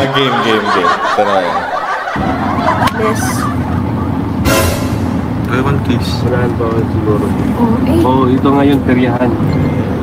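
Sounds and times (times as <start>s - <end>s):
voices: 0.0s - 4.4s
car interior rumble: 2.2s - 10.0s.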